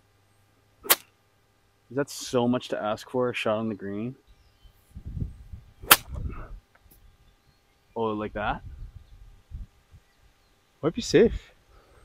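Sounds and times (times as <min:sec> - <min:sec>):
golf club striking ball: 0:05.8 - 0:06.2.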